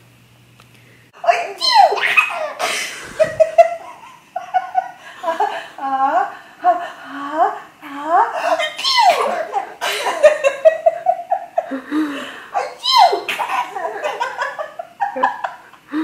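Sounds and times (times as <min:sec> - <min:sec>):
woman laughing: 0:01.6 - 0:16.0.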